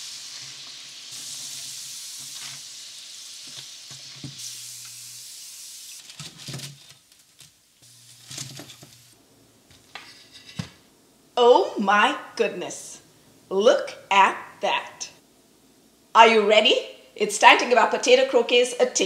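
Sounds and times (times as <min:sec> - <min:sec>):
food deep-frying in hot oil: 0:00.0 - 0:09.2.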